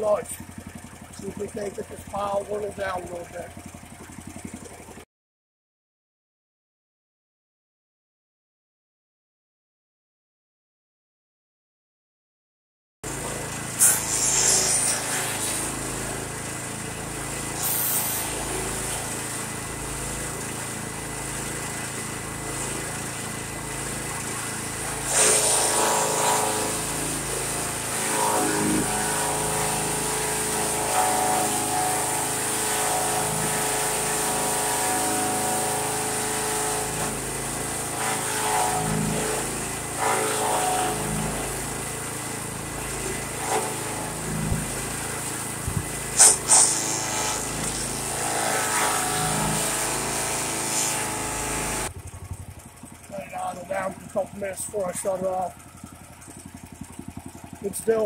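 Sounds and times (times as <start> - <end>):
chipper shredder engine running: 0.0 - 5.0, 13.0 - 58.0
sharp cracks: 46.2 - 47.8.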